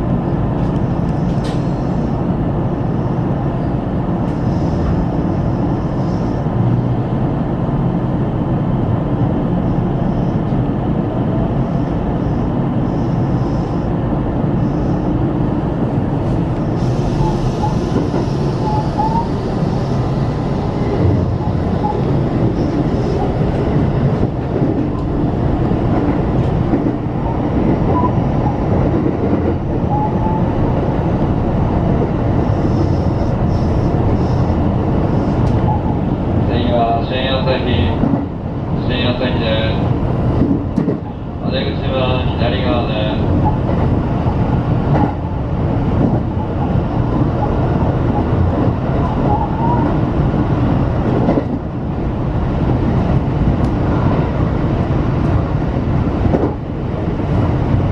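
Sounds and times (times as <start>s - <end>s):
train wheels rumbling on rail: 0.0s - 57.9s.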